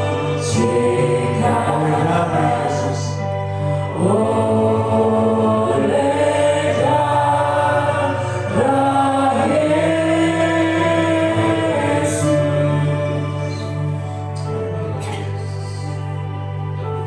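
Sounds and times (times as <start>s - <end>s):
keyboard accompaniment: 0.0s - 17.0s.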